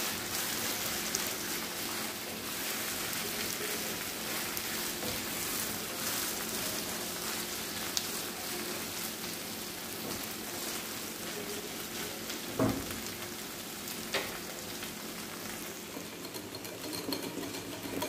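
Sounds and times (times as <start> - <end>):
wooden spoon stirring: 0.0 - 12.5
vegetables sizzling in a frying pan: 0.0 - 18.0.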